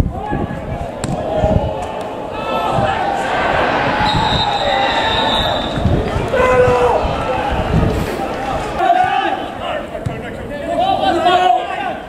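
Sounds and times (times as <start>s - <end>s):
players calling out: 0.1s - 12.0s.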